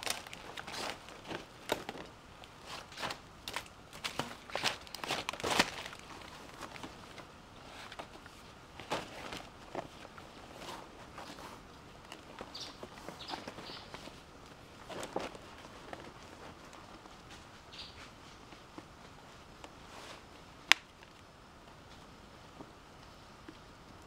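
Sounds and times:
leaves rustling and crackling: 0.0 - 24.0.

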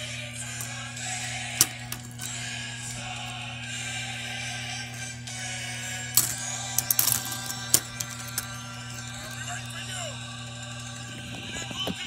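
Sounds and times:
background music: 0.0 - 12.0
steady low hum: 0.0 - 12.0.

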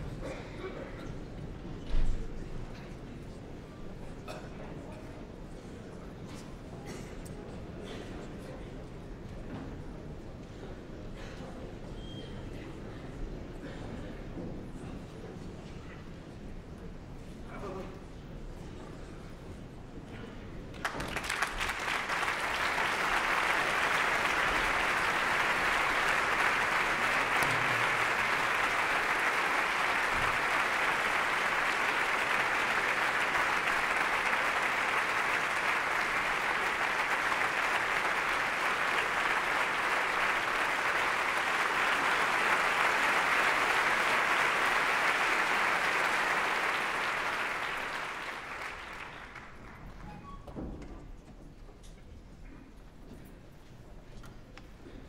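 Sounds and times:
audience applauding: 20.7 - 50.4.

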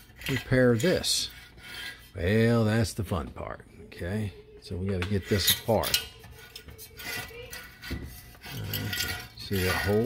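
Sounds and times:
cord reel rubbing: 5.2 - 10.0.

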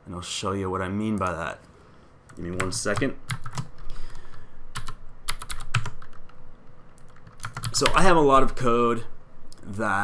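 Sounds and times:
typing on computer keyboard: 2.6 - 3.8, 4.8 - 6.4, 7.0 - 8.0.

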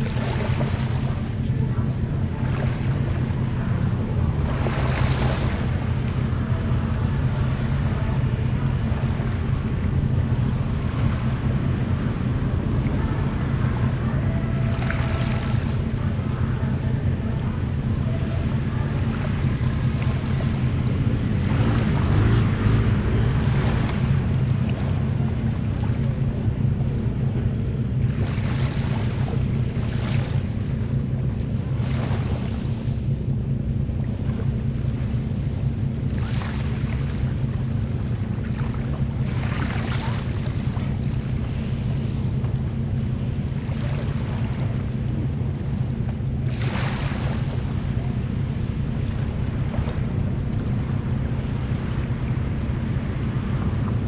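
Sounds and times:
small sea waves washing in: 0.0 - 54.0
wind rumble on microphone: 0.0 - 54.0.

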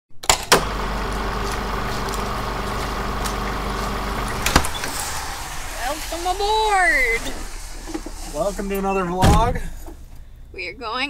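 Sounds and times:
car engine idling: 0.6 - 11.0.

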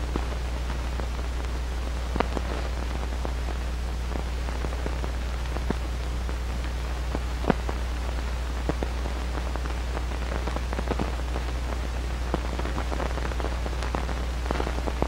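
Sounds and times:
low hum: 0.0 - 12.3
crackles and pops: 0.0 - 15.0
film hiss: 0.0 - 15.0.

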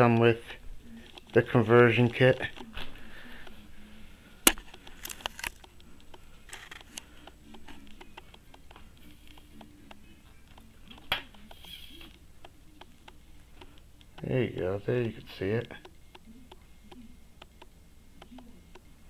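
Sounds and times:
faint low room hum: 0.0 - 19.0.

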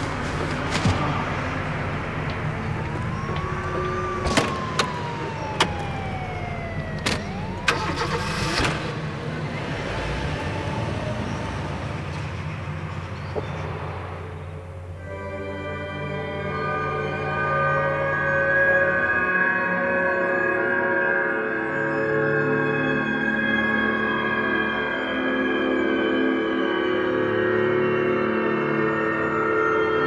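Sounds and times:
gliding siren-like tone: 0.0 - 13.1, 15.0 - 27.6
car engine running: 0.0 - 15.0
car doors shutting: 0.1 - 9.2.

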